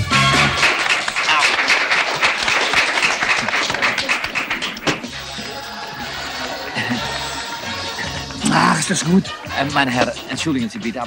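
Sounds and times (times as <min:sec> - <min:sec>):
crowd clapping: 0:00.0 - 0:07.9
voices: 0:01.2 - 0:11.0.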